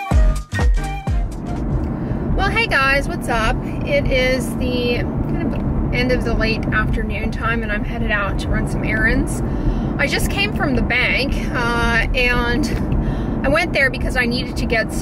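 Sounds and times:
car interior rumble: 1.1 - 15.0.

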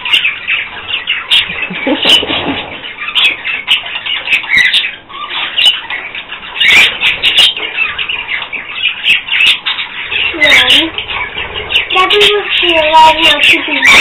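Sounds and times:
budgerigars chattering and chirping: 0.0 - 14.0
girl laughing: 1.5 - 2.3.

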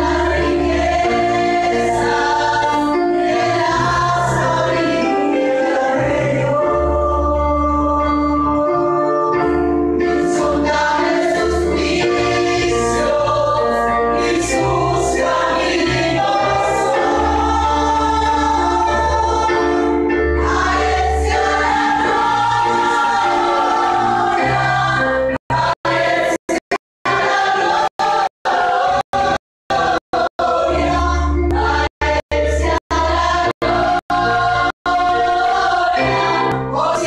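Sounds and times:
group singing worship song: 0.0 - 9.3, 10.1 - 37.0
instrumental accompaniment with bass: 0.0 - 37.0.

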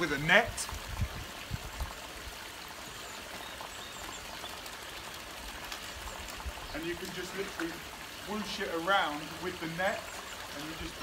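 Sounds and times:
waterfall splashing into pond: 0.0 - 11.0.

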